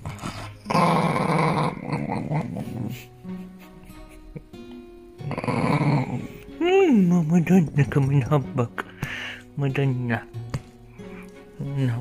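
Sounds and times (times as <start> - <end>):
dog growling: 0.0 - 3.1, 5.2 - 6.4.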